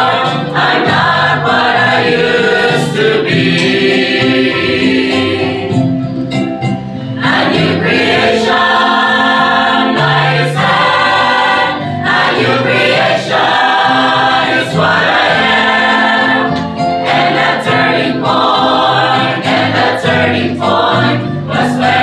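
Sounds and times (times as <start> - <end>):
choir singing a hymn: 0.0 - 6.1, 7.0 - 22.0.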